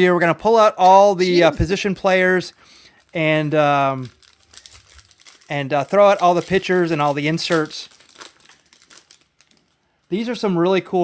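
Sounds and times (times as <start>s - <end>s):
plastic wrapper crinkling: 1.0s - 10.4s.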